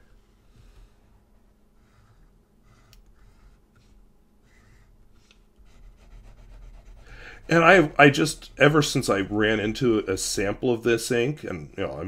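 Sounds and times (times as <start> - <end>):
pen nib scratching on paper: 1.8 - 7.9.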